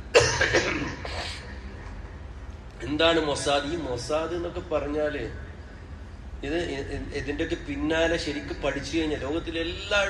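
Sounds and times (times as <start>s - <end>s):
man coughing: 0.1s - 1.6s.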